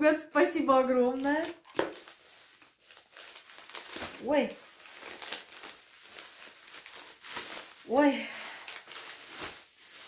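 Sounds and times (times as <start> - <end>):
plastic packaging crinkling: 0.9 - 10.0.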